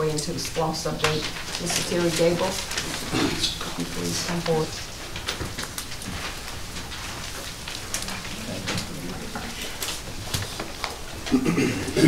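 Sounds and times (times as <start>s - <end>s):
papers rustling: 0.0s - 11.3s
clicks and knocks of people shifting: 0.0s - 12.0s.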